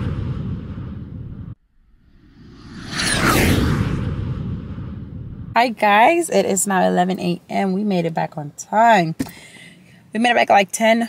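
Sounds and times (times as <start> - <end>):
whoosh with rumble and falling whistle: 0.0 - 5.6.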